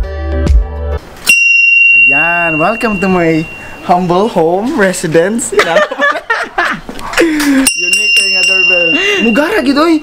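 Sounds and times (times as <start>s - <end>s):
high-pitched electronic beep: 2.0s - 4.1s.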